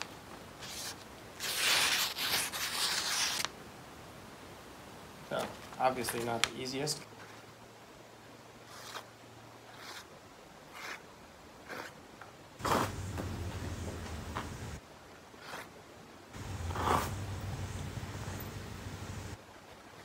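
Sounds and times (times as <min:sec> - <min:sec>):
knife slicing paper: 0:00.6 - 0:03.5.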